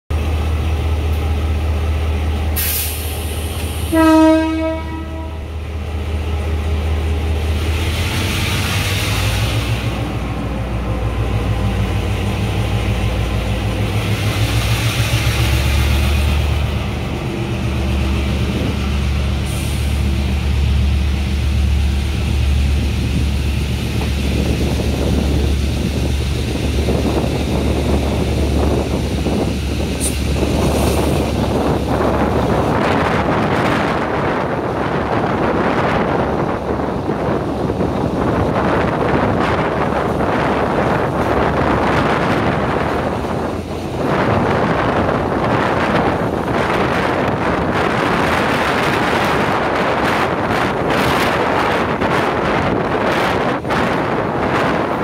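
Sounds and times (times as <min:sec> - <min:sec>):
diesel locomotive engine running: 0:00.1 - 0:55.0
train wheels rumbling: 0:00.1 - 0:55.0
train horn blast: 0:03.8 - 0:05.5.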